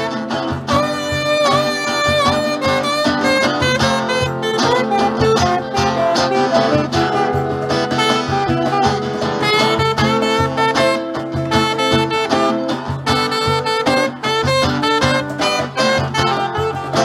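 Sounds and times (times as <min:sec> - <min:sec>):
cajon beat: 0:00.0 - 0:17.0
saxophone melody: 0:00.0 - 0:17.0
strummed acoustic guitars: 0:00.0 - 0:17.0.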